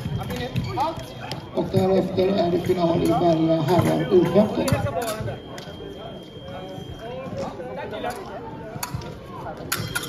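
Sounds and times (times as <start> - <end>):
chatter of many voices: 0.0 - 10.0.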